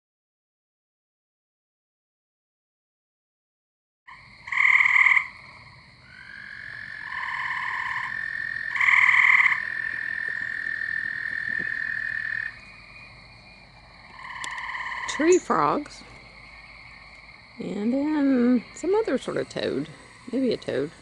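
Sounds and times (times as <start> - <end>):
treefrogs pulsed trills: 4.1 - 21.0.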